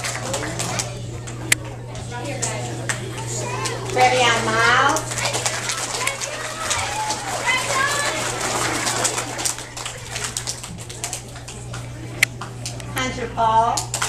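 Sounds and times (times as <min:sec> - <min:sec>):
steady low hum: 0:00.0 - 0:14.0
people talking indistinctly: 0:00.3 - 0:13.7.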